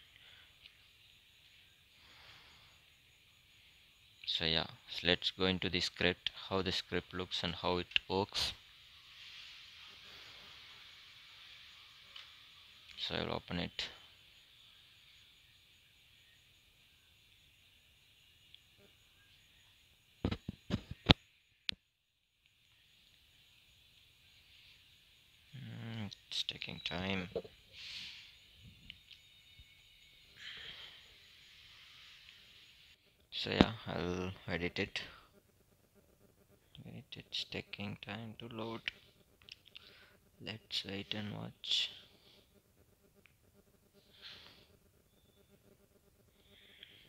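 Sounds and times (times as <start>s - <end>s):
faint background hiss: 0.0s - 21.7s
faint room hiss: 0.0s - 47.0s.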